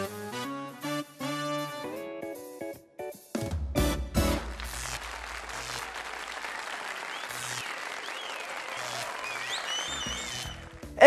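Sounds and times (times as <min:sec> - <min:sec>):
audience applause: 0:04.4 - 0:11.0.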